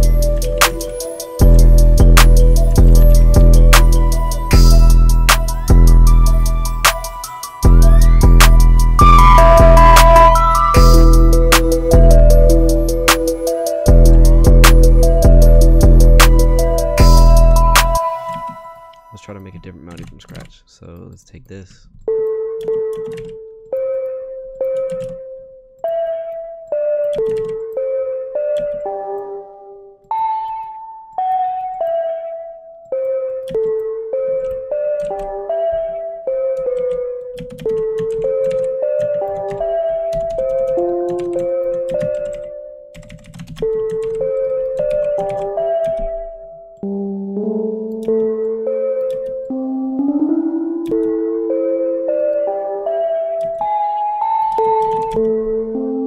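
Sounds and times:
synth bell melody: 0.0s - 19.9s, 22.1s - 56.0s
key clicks: 22.0s - 23.8s.

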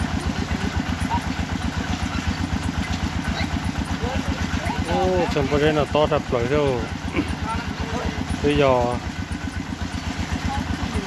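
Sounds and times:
drilling rig engine chugging: 0.0s - 11.0s.

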